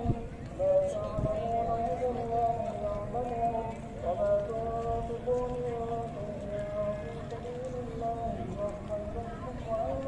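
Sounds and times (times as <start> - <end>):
person singing slow melody: 0.0 - 10.0.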